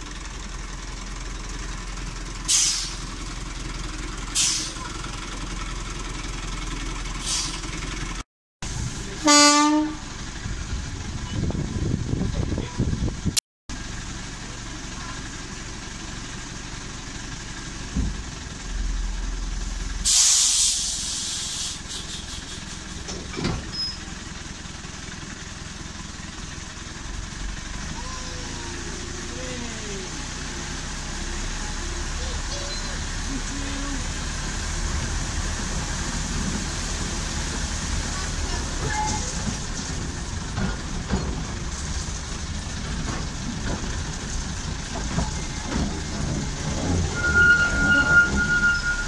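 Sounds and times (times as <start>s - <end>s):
diesel locomotive running: 0.0s - 49.0s
air hiss: 20.0s - 23.0s.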